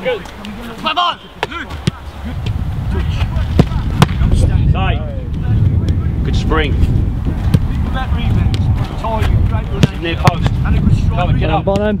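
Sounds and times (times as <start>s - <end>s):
footballs being struck: 0.2s - 4.4s, 7.2s - 10.6s
wind rumbling on microphone: 1.5s - 12.0s.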